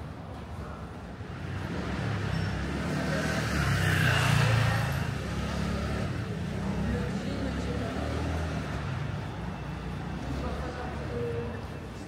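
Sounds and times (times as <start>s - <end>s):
low traffic rumble: 0.0s - 12.0s
car passing by: 1.4s - 11.3s.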